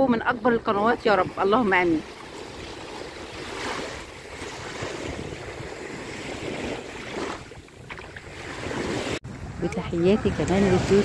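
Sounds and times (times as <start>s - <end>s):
small waves breaking on sand: 0.8s - 11.0s.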